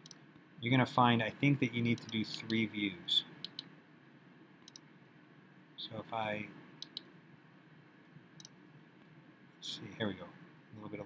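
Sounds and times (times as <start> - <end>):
computer mouse click: 0.0 - 0.2, 3.4 - 3.7, 4.6 - 4.9, 6.8 - 7.1
low room hiss: 0.0 - 11.0.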